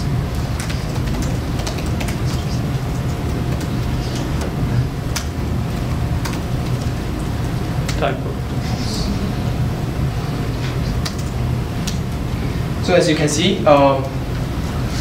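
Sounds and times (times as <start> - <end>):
steady low hum: 0.0 - 15.0
laptop keyboard typing: 0.3 - 4.5.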